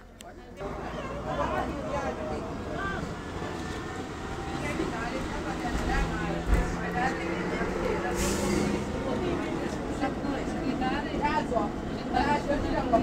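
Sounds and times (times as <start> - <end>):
bus diesel engine: 0.0 - 13.0
passengers chatting: 0.0 - 13.0.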